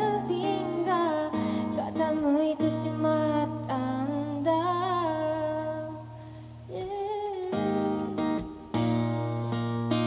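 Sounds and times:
woman singing with vibrato: 0.0s - 9.4s.

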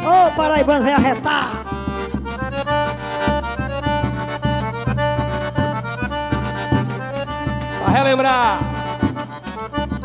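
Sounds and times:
piano accordion: 0.0s - 10.0s.

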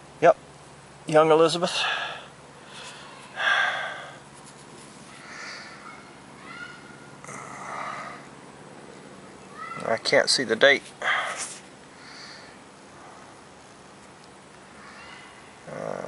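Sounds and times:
man exhaling breathily: 1.7s - 4.2s, 7.3s - 8.3s, 11.0s - 12.6s.

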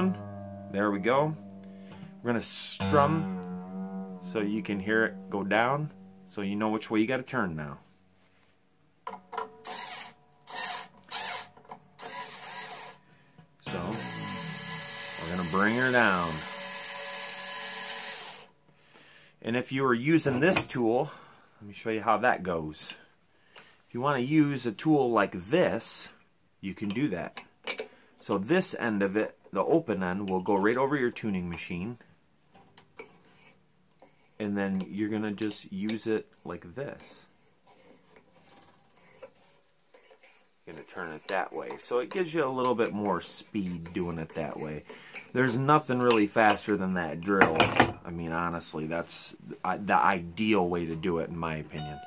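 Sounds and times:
string winder motor running: 13.7s - 18.5s.

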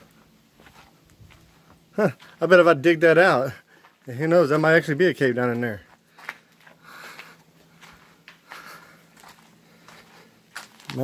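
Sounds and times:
footsteps on rocky ground: 0.0s - 11.0s.

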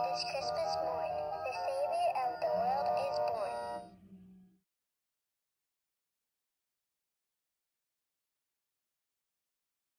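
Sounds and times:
toy playing song: 0.0s - 4.0s.

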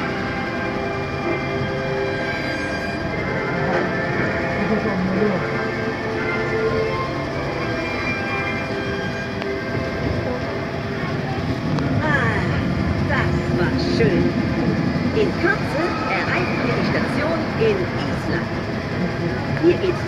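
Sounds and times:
monorail train running hum: 0.0s - 20.0s
voices: 3.5s - 20.0s.

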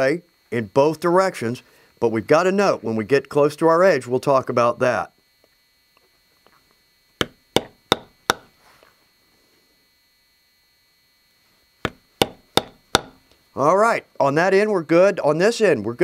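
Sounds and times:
mallet striking stamping tool: 7.2s - 8.5s, 11.8s - 13.2s.

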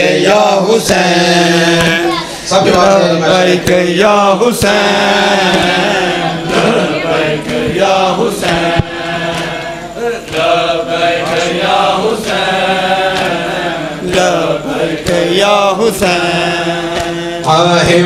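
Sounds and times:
men chanting a lament: 0.0s - 18.0s
hands slapping chests: 5.5s - 18.0s.

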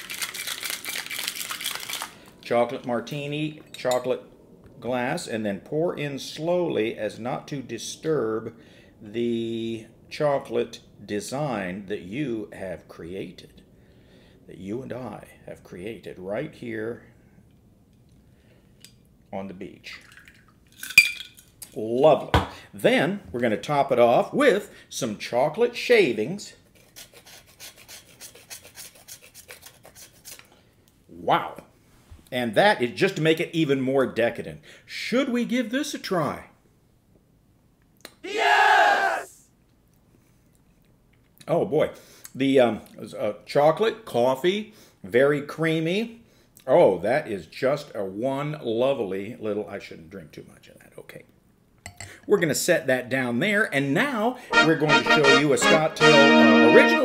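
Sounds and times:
ice rattling in cocktail shaker: 0.0s - 2.4s, 19.9s - 21.5s
tool scraping chocolate: 26.8s - 30.5s.

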